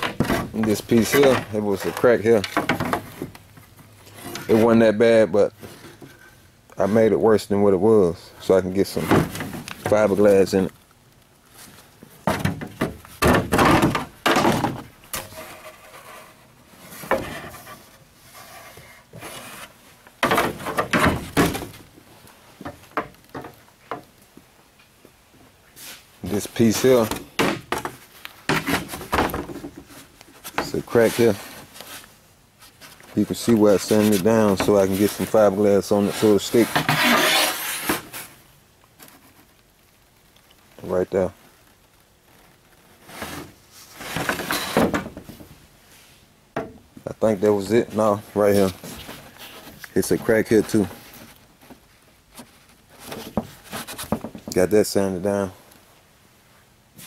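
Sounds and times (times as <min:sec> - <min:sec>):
plastic rubbing and scraping: 0:00.0 - 0:04.9, 0:11.5 - 0:22.0, 0:25.9 - 0:38.4, 0:41.1 - 0:45.5, 0:47.4 - 0:54.6
plastic pieces thudding and scraping: 0:12.1 - 0:15.6.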